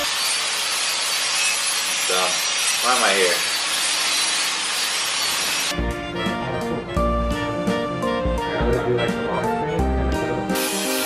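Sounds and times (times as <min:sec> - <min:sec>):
power tool grinding: 0:00.0 - 0:05.8
music: 0:05.7 - 0:11.0.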